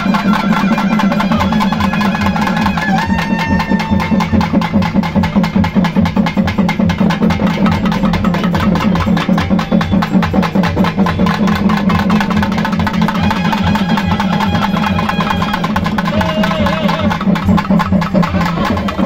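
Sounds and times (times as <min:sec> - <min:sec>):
drum ensemble playing fast rhythm: 0:00.0 - 0:19.0.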